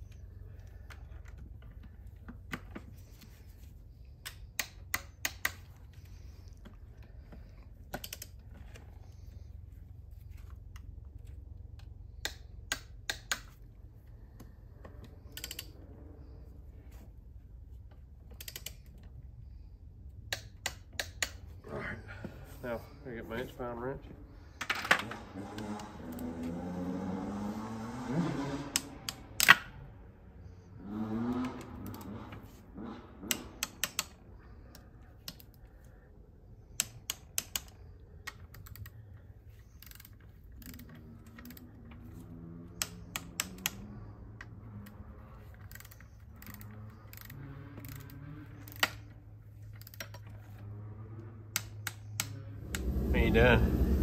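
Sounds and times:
ratchet and torque wrench clicks: 4.2s - 6.6s, 7.4s - 8.5s, 11.8s - 13.7s, 15.1s - 15.9s, 18.3s - 19.0s, 20.2s - 21.5s, 28.5s - 29.8s, 31.2s - 35.6s, 36.5s - 50.5s, 51.5s - 53.6s
quiet voices: 21.6s - 24.3s.

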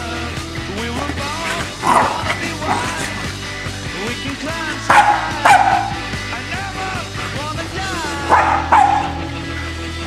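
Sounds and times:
rock music: 0.0s - 10.0s
dogs barking: 1.0s - 3.5s, 4.7s - 6.5s, 8.1s - 9.4s.

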